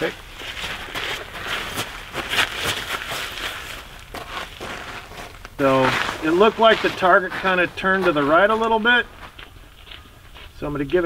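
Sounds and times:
footsteps shuffling on dirt: 0.0 - 11.0.

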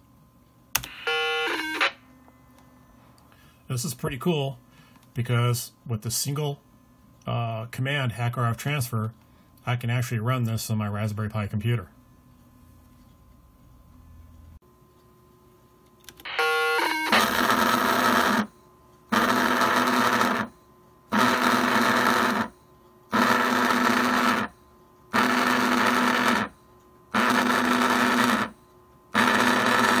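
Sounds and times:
pager buzzing in pulses: 0.8 - 2.0, 16.2 - 20.5, 21.1 - 30.0.

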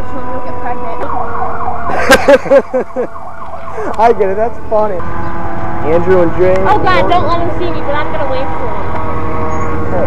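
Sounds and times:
person laughing: 1.8 - 4.0.

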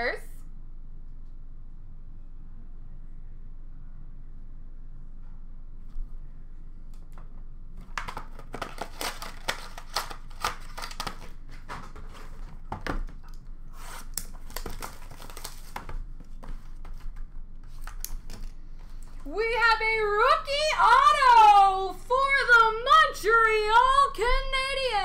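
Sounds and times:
packaging crinkling and tearing: 7.8 - 19.2.

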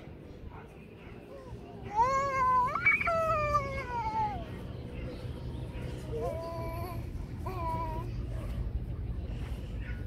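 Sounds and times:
small child wailing: 1.8 - 4.5.

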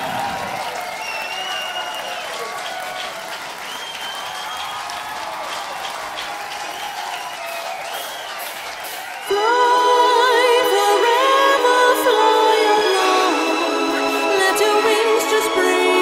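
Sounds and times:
whistles: 0.0 - 2.8, 3.5 - 5.2, 6.5 - 9.4
crowd applauding and cheering: 0.0 - 16.0.

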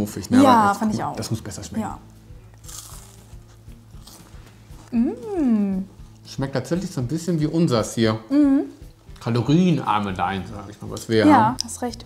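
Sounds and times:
people chewing crunchy cereal bar: 2.6 - 4.9.

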